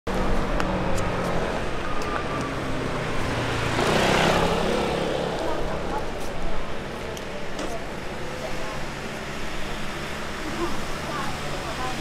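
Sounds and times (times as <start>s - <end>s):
vehicle passing close: 0.1s - 7.0s
vehicle engines running: 0.1s - 12.0s.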